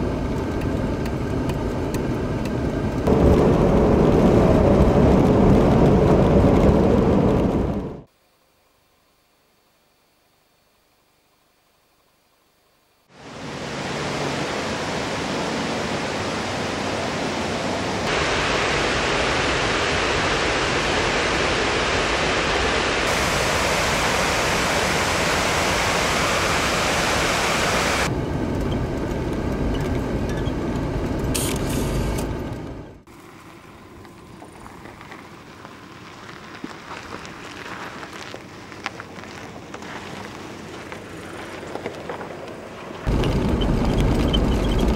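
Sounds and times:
water rushing over dam: 0:13.2 - 0:28.1.

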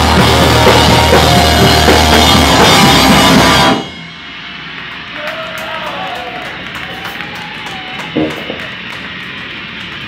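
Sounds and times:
guitar amplifier hum: 0:00.0 - 0:05.2, 0:06.0 - 0:10.0
room noise: 0:00.0 - 0:10.0.

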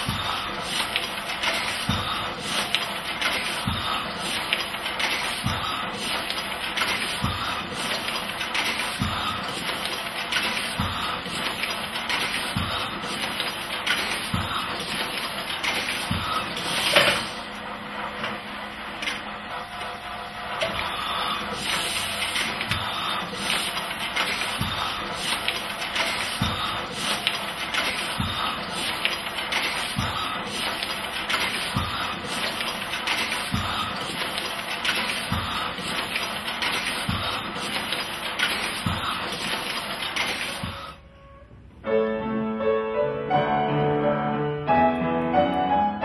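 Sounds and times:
printing machine clattering: 0:00.0 - 0:41.0.

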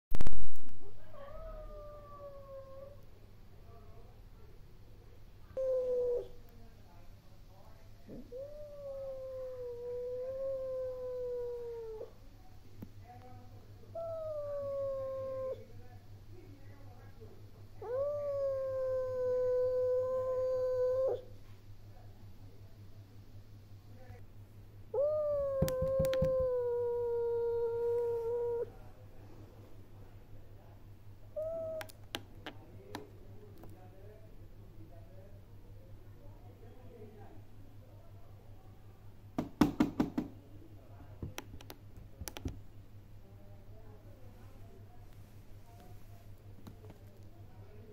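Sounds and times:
cat yowling: 0:25.0 - 0:28.7, 0:31.4 - 0:31.9.

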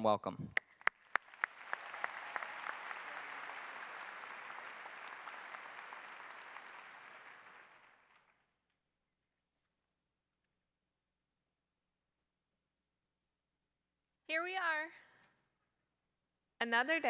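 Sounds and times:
audience applauding: 0:00.6 - 0:08.5.

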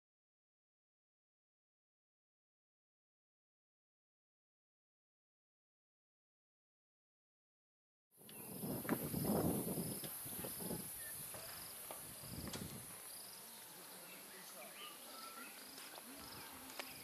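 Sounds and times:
insects chirping: 0:08.2 - 0:17.0
steady high-pitched hiss: 0:08.2 - 0:17.0.

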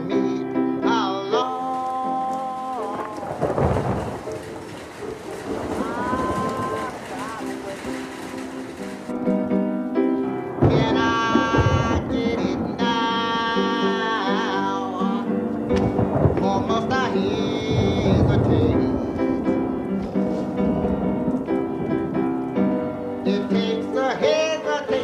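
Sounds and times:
man singing slow song: 0:00.0 - 0:04.3, 0:05.8 - 0:07.7, 0:10.6 - 0:19.9, 0:23.2 - 0:25.0
piano accompaniment: 0:00.0 - 0:25.0.

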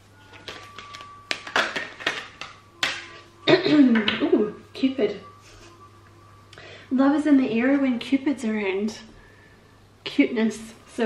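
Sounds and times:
cards being shuffled: 0:00.2 - 0:03.1.

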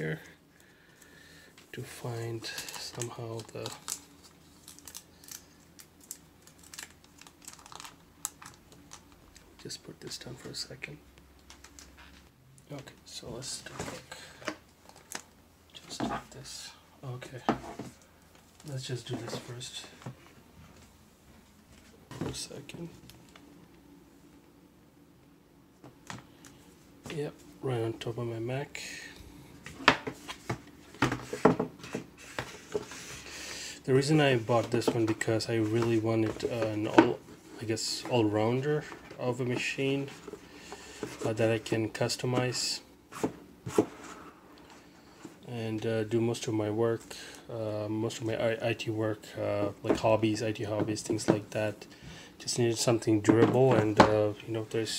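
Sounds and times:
plastic wrapping crinkling: 0:02.4 - 0:09.6.

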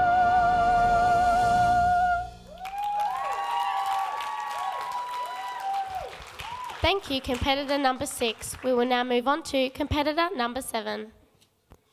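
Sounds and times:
whooping cheers: 0:02.5 - 0:06.9
audience applauding: 0:02.5 - 0:08.9.

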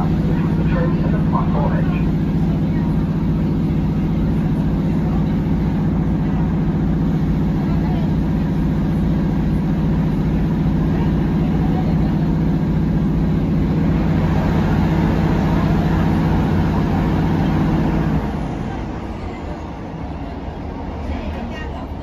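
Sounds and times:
train diesel engine drone: 0:00.0 - 0:22.0
wheels running on track: 0:00.0 - 0:22.0.

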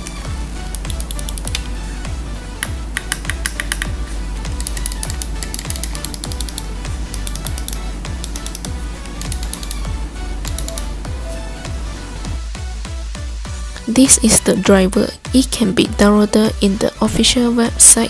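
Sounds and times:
background music with steady beat: 0:00.0 - 0:18.0.

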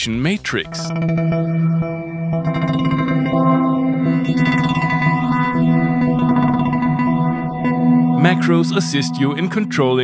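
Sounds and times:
synthesizer sustained sweeping chord: 0:00.9 - 0:09.9.

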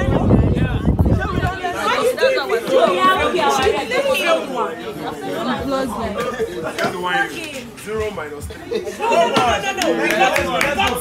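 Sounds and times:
crowd of people chatting: 0:00.0 - 0:11.0.

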